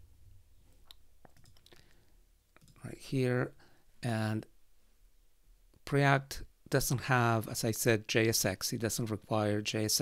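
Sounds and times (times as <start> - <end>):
computer mouse clicks: 0.7 - 1.9, 2.5 - 2.8.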